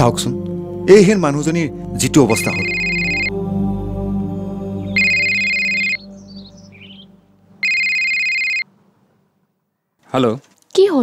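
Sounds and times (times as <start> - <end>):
soft background music: 0.0 - 8.9
electronic telephone ringing: 2.3 - 3.3, 5.0 - 6.0, 7.6 - 8.7.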